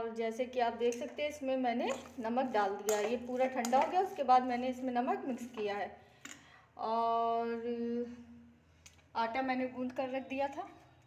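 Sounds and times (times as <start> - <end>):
woman speaking: 0.0 - 6.0, 6.8 - 8.3, 9.2 - 10.8.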